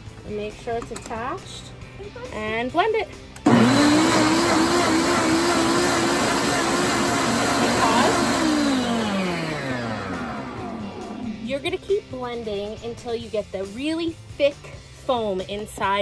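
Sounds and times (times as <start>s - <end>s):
blender running: 3.4s - 11.4s.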